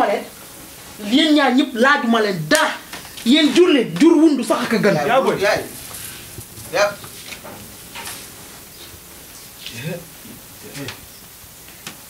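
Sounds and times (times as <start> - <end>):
background hiss: 0.0 - 12.0
person speaking: 1.0 - 7.4.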